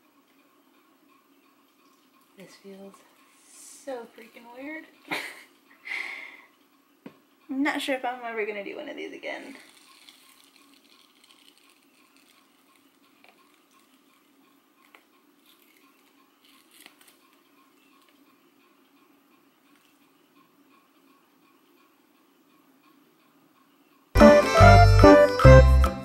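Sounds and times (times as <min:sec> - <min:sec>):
face mask peeling ticks: 0:09.5 - 0:18.7.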